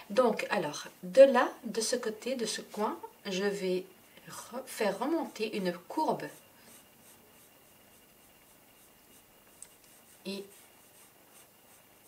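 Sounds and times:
colored pencil scratching on paper: 2.6 - 12.0.

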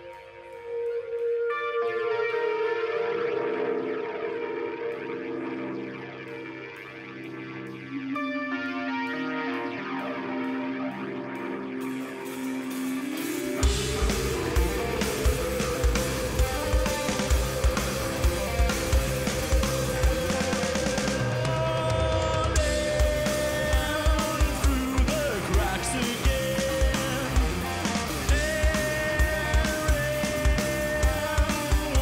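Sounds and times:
rock band with drums and bass: 0.0 - 32.0
held synthesizer tones: 12.1 - 29.7
rising glide: 12.6 - 32.0.

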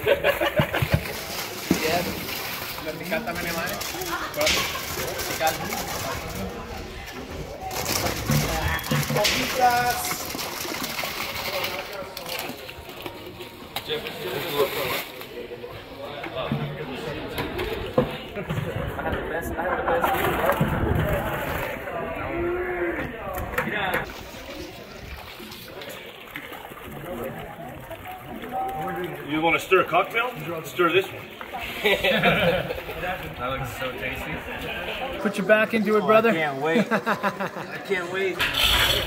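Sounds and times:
people chattering: 0.0 - 39.0.

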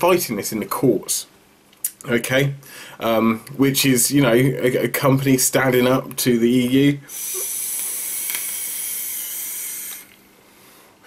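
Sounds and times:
e-cigarette draw hiss: 7.1 - 10.1.

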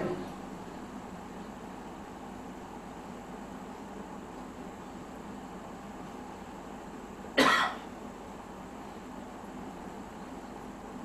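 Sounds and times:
steady low hiss: 0.0 - 11.0
person coughing: 7.4 - 7.9.

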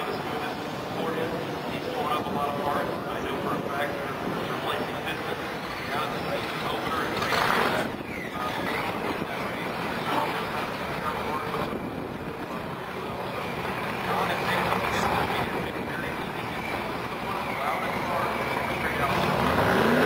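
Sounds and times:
vehicle engine: 4.0 - 11.8, 12.4 - 20.0.

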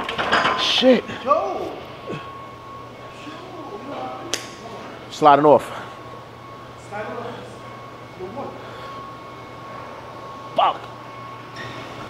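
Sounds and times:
ventilation hum: 0.0 - 12.0.

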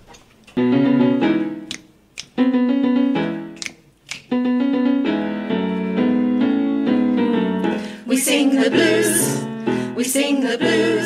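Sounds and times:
blues piano chords on keyboard: 0.6 - 11.0
sharp clicks: 1.7 - 2.4, 3.6 - 4.3.

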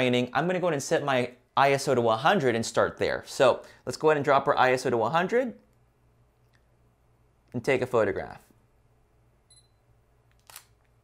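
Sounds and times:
camera focus beep: 9.5 - 9.8
camera shutter click: 10.4 - 10.8.

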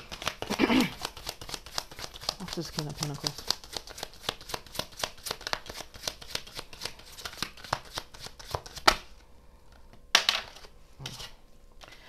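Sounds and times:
cards being shuffled: 0.0 - 9.1.

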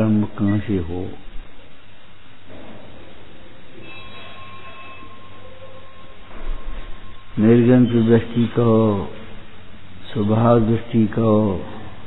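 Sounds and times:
low hum: 0.0 - 12.0
thin high tone: 3.7 - 8.5
steady hiss: 5.9 - 12.0.

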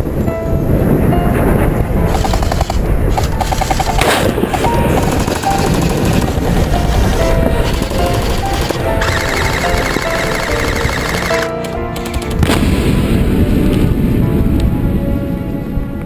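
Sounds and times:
music playing: 0.0 - 16.0
rapid automatic gunfire: 2.1 - 12.6.

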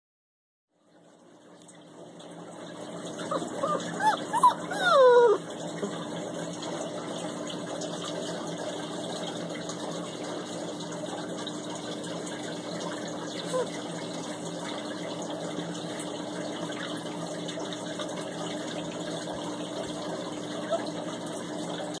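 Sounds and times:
puppy whining: 3.1 - 6.0, 13.3 - 13.8, 20.4 - 21.3.

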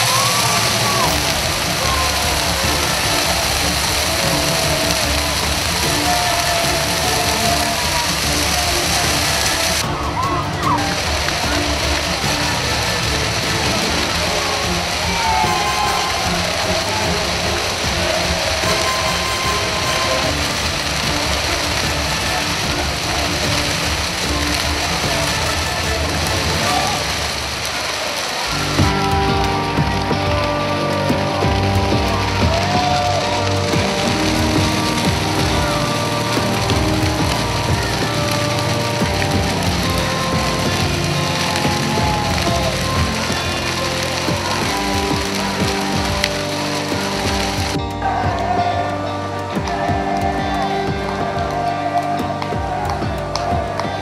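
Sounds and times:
bonfire crackling: 0.0 - 54.0
crowd shouting: 0.0 - 54.0
music with held notes: 0.0 - 54.0.

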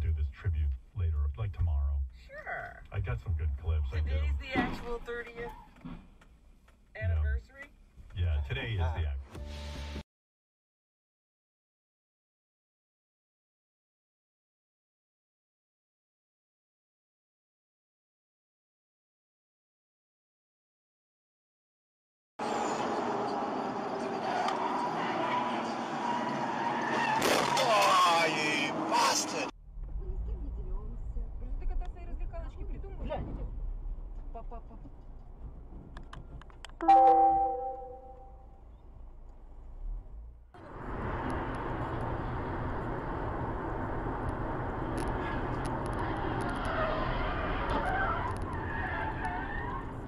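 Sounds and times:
car road noise: 0.0 - 9.2, 22.4 - 36.8, 38.0 - 50.0
wavering tyre squeal: 22.4 - 27.8, 45.1 - 50.0.

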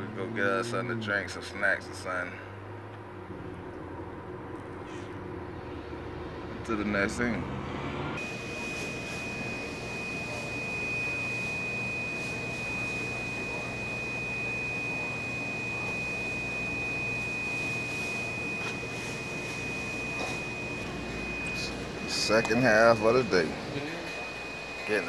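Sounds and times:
low machine hum: 0.0 - 25.0
high-pitched electronic tone: 8.2 - 25.0.

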